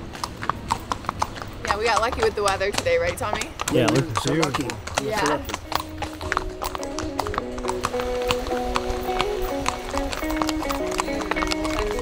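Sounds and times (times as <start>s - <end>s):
horse hooves clip-clopping on pavement: 0.0s - 12.0s
background music with held notes: 5.1s - 12.0s.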